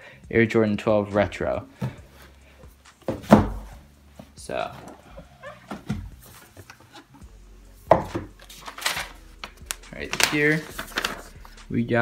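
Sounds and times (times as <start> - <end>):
paper rustling and crinkling: 8.1 - 11.6.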